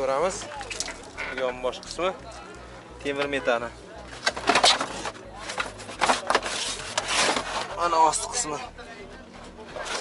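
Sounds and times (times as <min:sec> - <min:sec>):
trunk mat rustling and scraping: 0:04.2 - 0:08.2.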